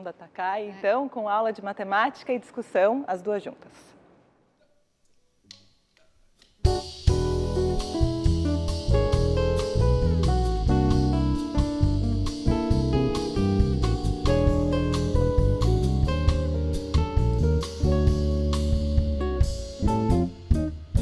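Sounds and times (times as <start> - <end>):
drum kit: 6.4 - 21.0
electric bass: 6.7 - 21.0
keyboard: 6.7 - 21.0.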